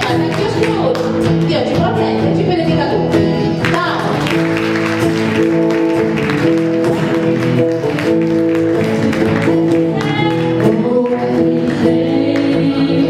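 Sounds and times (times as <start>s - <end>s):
acoustic guitars: 0.0s - 13.0s.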